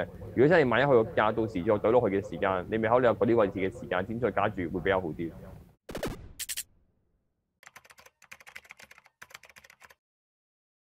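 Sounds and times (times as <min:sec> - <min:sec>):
keyboard typing clicks: 0:07.6 - 0:10.0.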